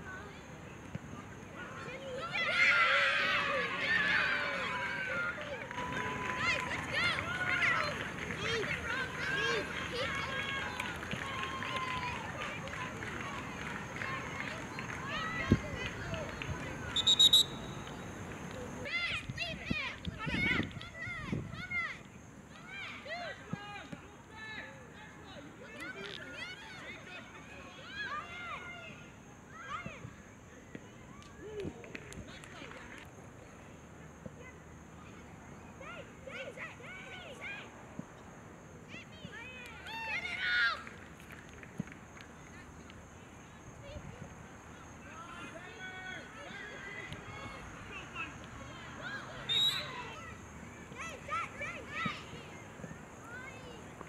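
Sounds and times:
high-pitched shouted calls: 16.9 - 17.8
trilling referee's whistle: 17.0 - 18.1, 49.4 - 50.2.

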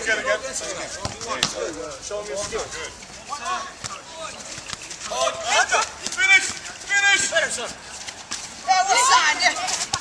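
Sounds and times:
players calling out: 0.0 - 10.0.

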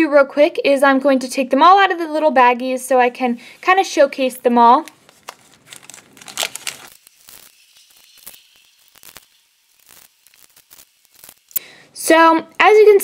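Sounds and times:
plastic bags crinkling: 4.7 - 11.6.

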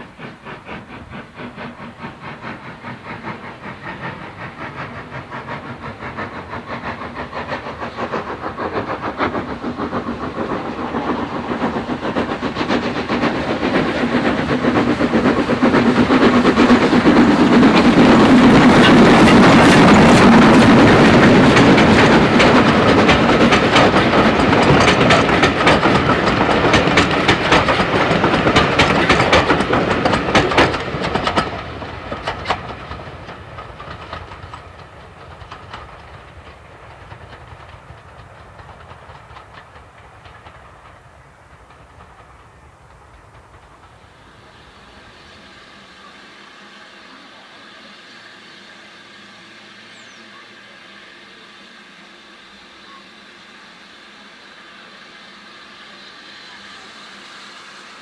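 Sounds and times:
train wheels clattering on rail joints: 0.0 - 45.0
steam locomotive exhaust beats: 0.0 - 58.0.

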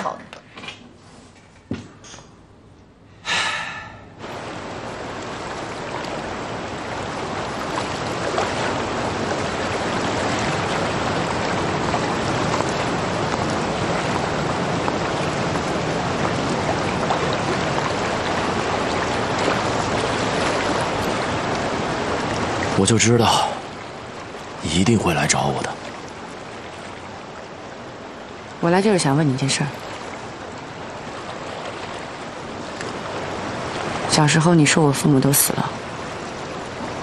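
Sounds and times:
sea surf rushing: 3.2 - 37.0.

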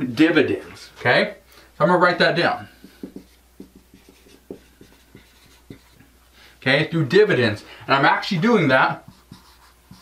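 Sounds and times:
marker writing on whiteboard: 2.7 - 6.1, 8.2 - 10.0.

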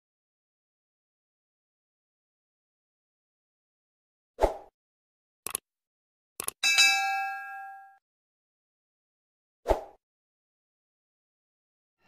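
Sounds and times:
notification bell ding: 6.6 - 8.0.

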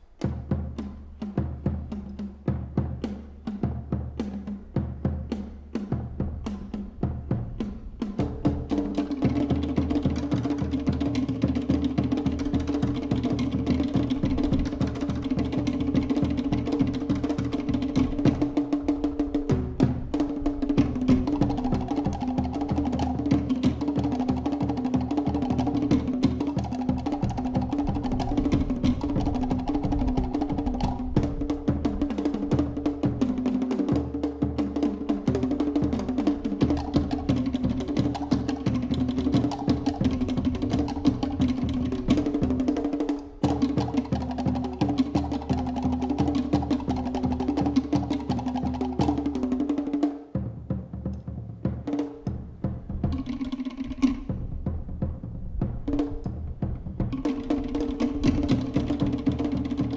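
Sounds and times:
deep drum beats: 0.1 - 59.9
fast slit drum rolls: 0.2 - 59.9.

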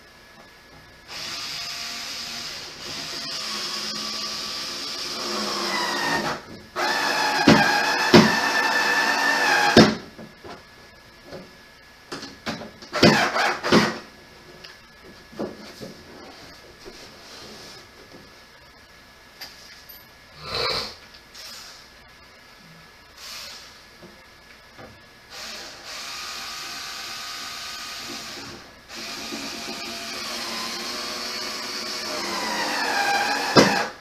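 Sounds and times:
power drill motor whining: 25.3 - 34.0.

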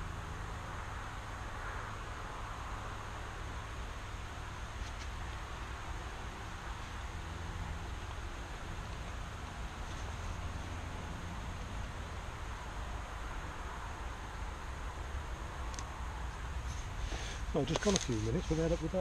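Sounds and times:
even hiss: 2.4 - 19.0.

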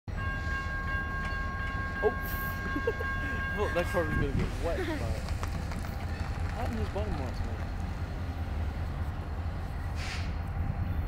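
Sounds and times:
freight train rumbling: 0.1 - 11.0.

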